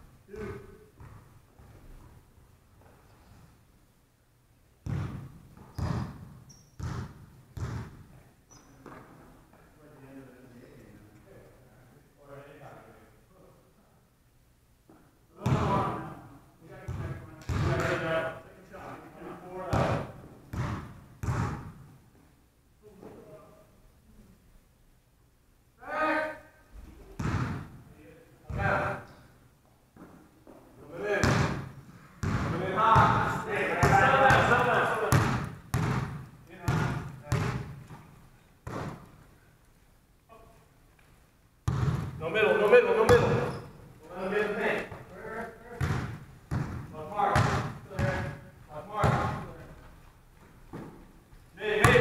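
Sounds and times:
basketball bouncing on hardwood floor: 4.8s - 8.0s, 19.7s - 21.9s, 27.2s - 27.8s, 31.2s - 31.6s, 32.2s - 34.5s, 35.1s - 38.0s, 38.6s - 39.1s, 41.6s - 42.2s, 45.8s - 48.4s, 49.0s - 49.4s
players' voices: 15.3s - 20.2s, 32.3s - 35.5s, 42.2s - 50.0s, 51.6s - 52.0s
players calling out: 32.4s - 35.5s.

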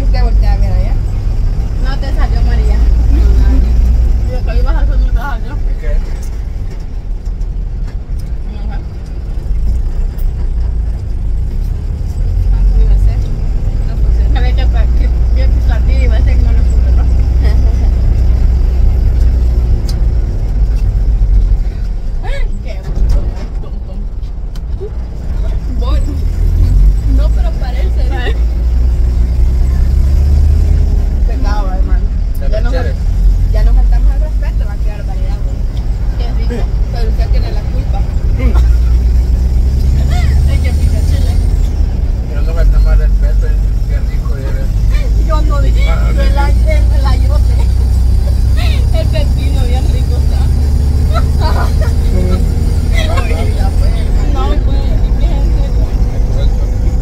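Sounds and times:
bus engine and road rumble: 0.0s - 57.0s
passengers chatting and laughing: 0.0s - 57.0s.

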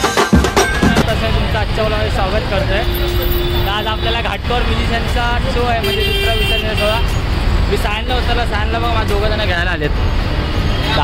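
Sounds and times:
man talking: 0.8s - 10.0s
road traffic rumble: 1.0s - 11.0s.

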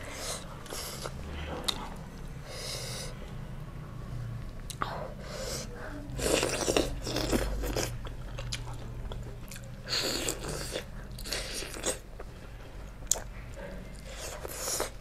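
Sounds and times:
chewing and biting food: 6.2s - 15.0s.

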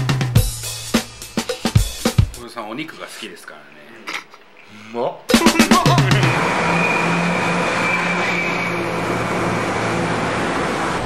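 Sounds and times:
constant hiss: 0.4s - 6.3s
high-pitched whine: 5.3s - 11.0s.

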